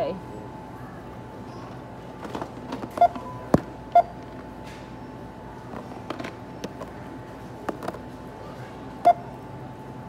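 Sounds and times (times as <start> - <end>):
barcode scanner beeping: 3.9 - 4.2, 9.0 - 9.2.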